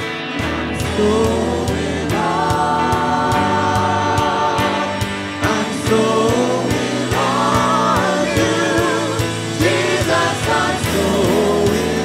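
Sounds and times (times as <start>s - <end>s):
band with steady beat: 0.0s - 12.0s
group singing together: 0.0s - 12.0s.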